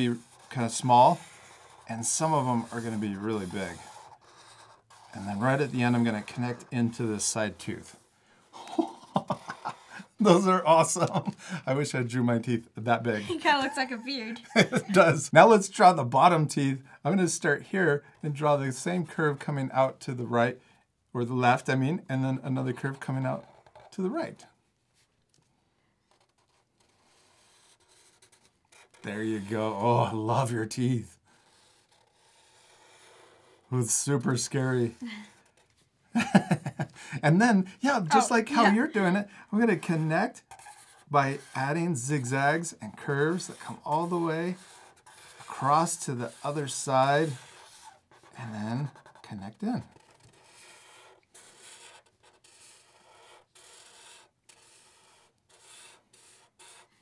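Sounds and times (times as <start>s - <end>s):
marker drawing on paper: 0.0s - 8.4s, 9.0s - 11.7s, 21.6s - 57.0s.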